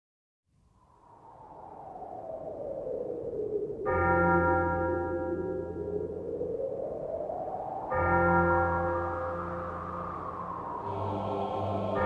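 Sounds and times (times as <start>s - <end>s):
tone gliding downward: 9.0s - 12.0s
droning chord: 10.8s - 12.0s.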